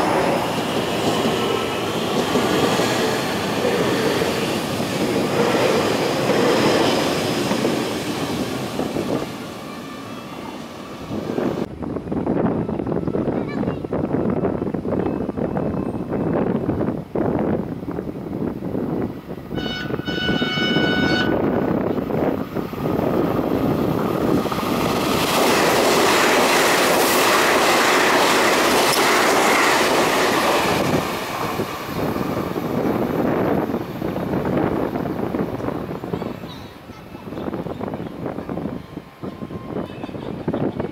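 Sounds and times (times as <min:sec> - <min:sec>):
train wheels and motors passing: 0:00.0 - 0:11.7, 0:21.5 - 0:36.0
train horn blast: 0:19.5 - 0:21.5.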